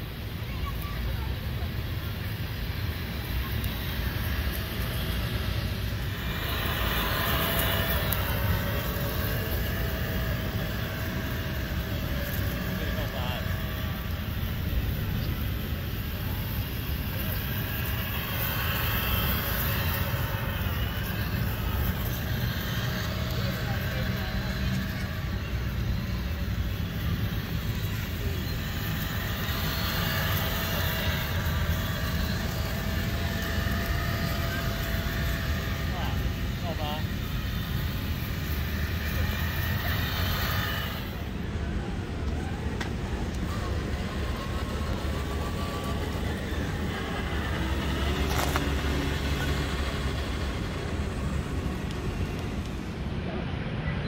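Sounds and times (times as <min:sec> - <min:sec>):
distant voices: 0:00.0 - 0:54.0
outdoor noise: 0:00.0 - 0:54.0
toy car motor whining: 0:00.0 - 0:54.0.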